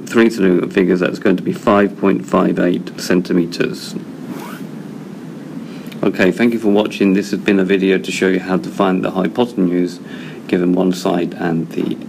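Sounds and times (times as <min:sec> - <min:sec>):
microphone hiss: 0:00.0 - 0:12.0.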